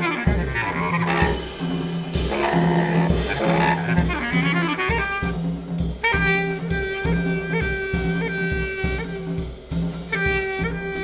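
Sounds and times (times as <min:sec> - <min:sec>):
bass clarinet low note: 0:00.0 - 0:01.5.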